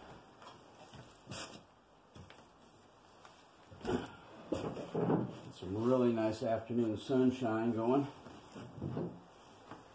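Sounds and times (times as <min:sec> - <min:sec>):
clothing and camera rustling: 0:00.0 - 0:06.3, 0:07.8 - 0:09.9.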